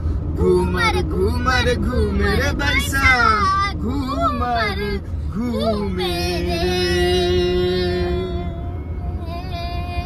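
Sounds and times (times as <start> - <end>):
car rumble from inside cabin: 0.0 - 10.0
girl's sing-song voice: 2.1 - 10.0.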